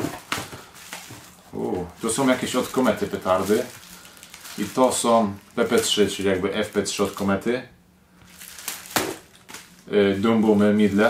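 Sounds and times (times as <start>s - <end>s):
plastic wrap crinkling: 0.0s - 7.6s, 8.2s - 11.0s
man humming: 1.5s - 2.0s.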